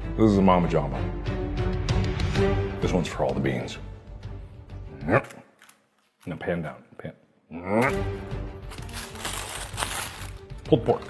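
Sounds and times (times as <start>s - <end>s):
background music: 0.0s - 5.6s, 7.5s - 11.0s
paper wrapper crinkling: 8.6s - 11.0s.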